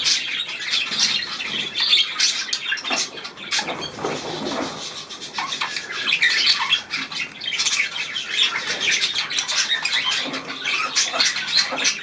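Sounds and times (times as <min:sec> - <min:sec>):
small birds chattering and chirping: 0:00.0 - 0:12.0.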